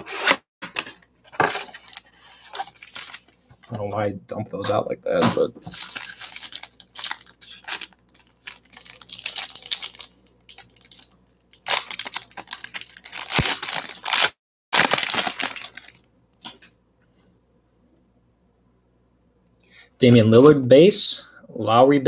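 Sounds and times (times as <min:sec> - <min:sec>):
foil wrapper crinkling and tearing: 0:05.7 - 0:16.1.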